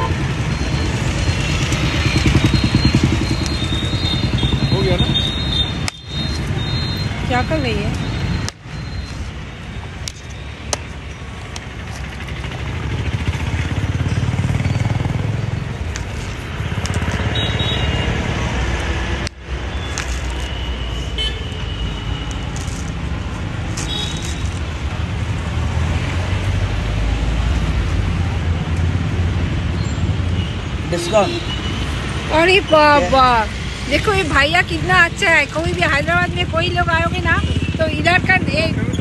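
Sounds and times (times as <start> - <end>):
passing road traffic: 0.0 - 39.0.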